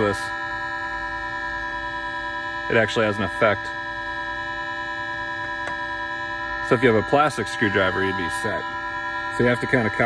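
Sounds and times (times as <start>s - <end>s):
held electronic chord: 0.0s - 10.0s.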